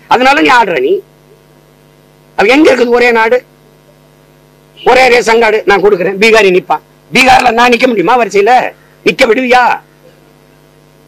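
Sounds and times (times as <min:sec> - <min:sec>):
steady electrical hum: 0:00.0 - 0:11.0
man speaking: 0:00.1 - 0:01.1, 0:02.4 - 0:03.5, 0:04.8 - 0:09.9.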